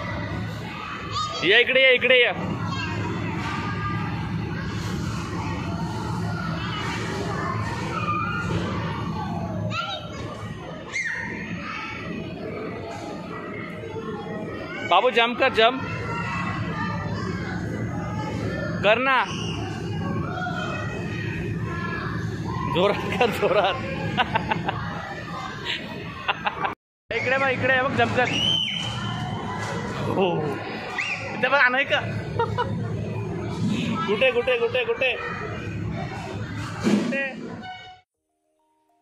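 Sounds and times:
background babble: 0:00.0 - 0:38.0
busy indoor hall noise: 0:00.0 - 0:38.1
children squealing: 0:10.8 - 0:11.8, 0:30.9 - 0:31.4.

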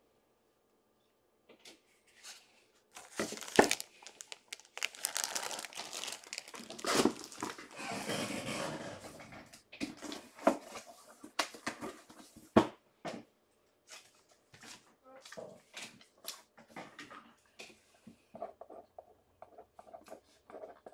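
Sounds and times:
plastic bag crinkling: 0:02.9 - 0:08.0.

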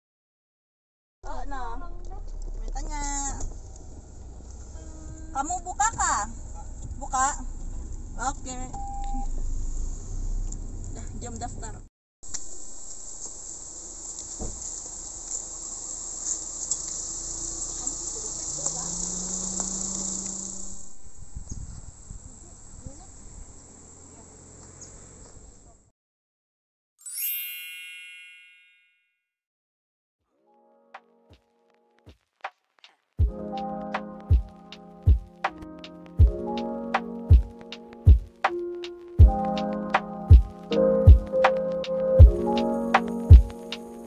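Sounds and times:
car engine idling: 0:01.6 - 0:08.7, 0:12.4 - 0:21.2
high-pitched insect chorus: 0:12.3 - 0:24.2.

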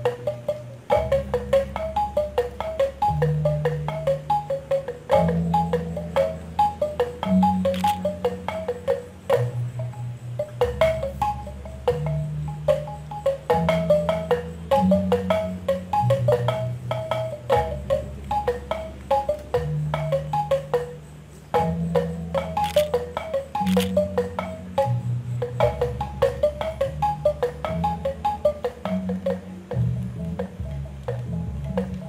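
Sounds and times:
bronze kettle gongs struck with mallets: 0:00.0 - 0:32.0.

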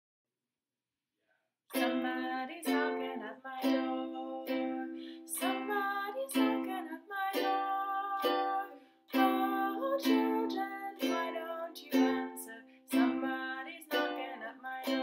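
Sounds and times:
ukulele strumming chords: 0:01.7 - 0:15.0.

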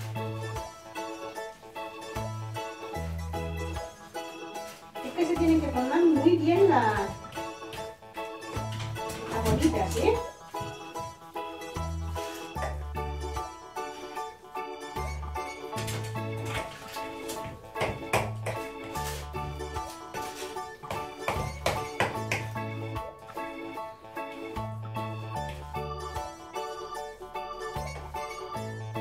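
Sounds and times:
background music with held tones: 0:00.0 - 0:29.0.

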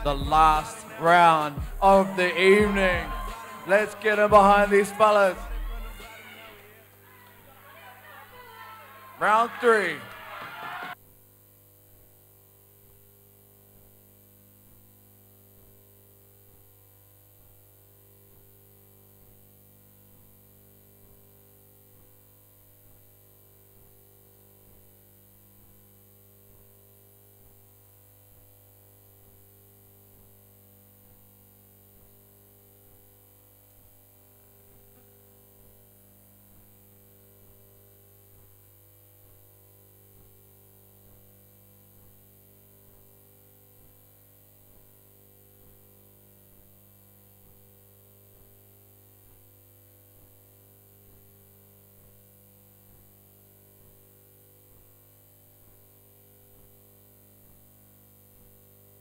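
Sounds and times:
low electrical hum: 0:00.0 - 0:10.2.

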